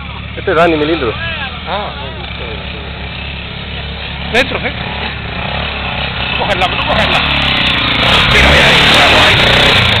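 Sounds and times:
dirt bike engine revving hard: 2.3 - 10.0.

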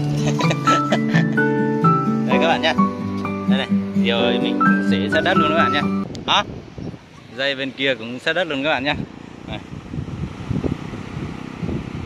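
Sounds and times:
wind buffeting the microphone: 6.0 - 7.6, 8.6 - 12.0.

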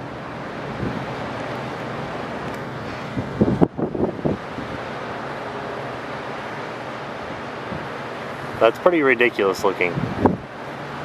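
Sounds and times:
wind buffeting microphone: 0.0 - 5.2, 7.2 - 8.8, 9.6 - 11.0.

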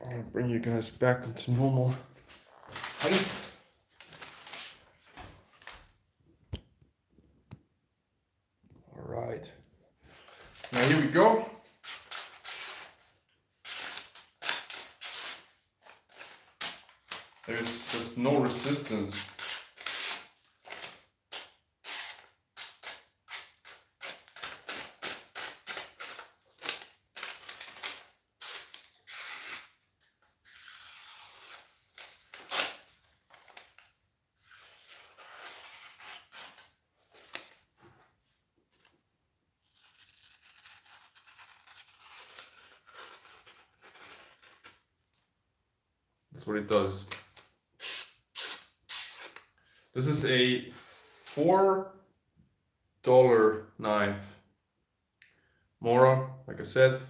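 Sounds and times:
knife slicing through paper: 39.6 - 44.8.

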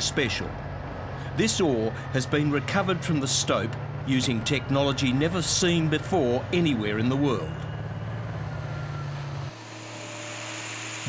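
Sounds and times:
diesel truck engine rumbling: 0.0 - 9.7.

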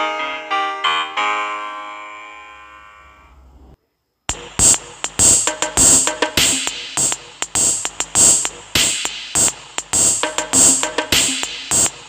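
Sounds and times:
synthesized keyboard chord: 4.3 - 11.9
electronic drum hits: 4.3 - 12.0.

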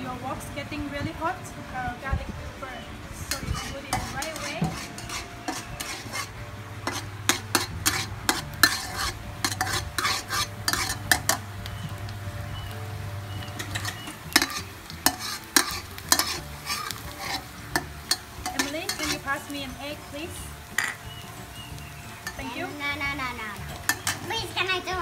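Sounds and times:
garlic sizzling in oil: 0.0 - 25.0
metal spatula scraping a wok: 3.2 - 11.5, 13.4 - 21.6, 22.2 - 22.5, 23.6 - 24.3.

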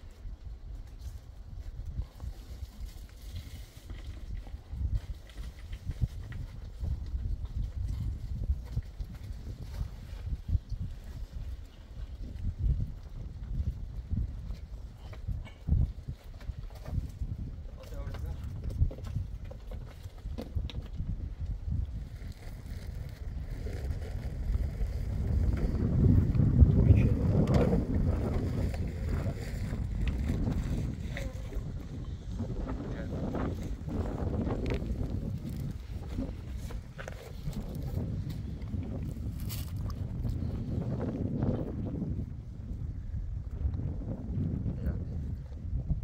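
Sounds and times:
wind buffeting microphone: 0.0 - 46.0.

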